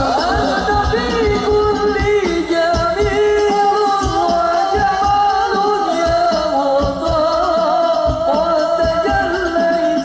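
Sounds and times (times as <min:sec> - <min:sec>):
low drum beats: 0:00.0 - 0:10.0
voices singing devotional melody: 0:00.0 - 0:10.0.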